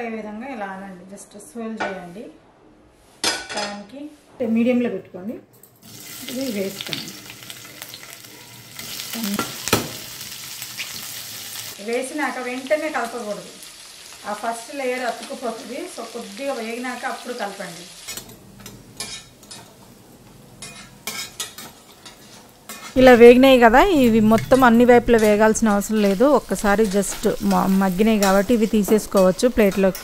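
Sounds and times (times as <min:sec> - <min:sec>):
food sizzling in hot oil: 0:05.8 - 0:30.0
metal turner scraping frying pan: 0:20.6 - 0:23.2.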